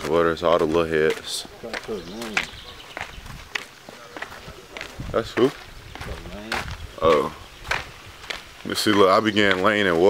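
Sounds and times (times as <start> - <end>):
footsteps on paved path: 0.0 - 10.0.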